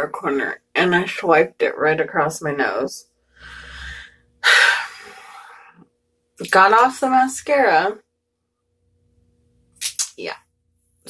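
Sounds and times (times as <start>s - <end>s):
woman breathing: 3.2s - 5.9s.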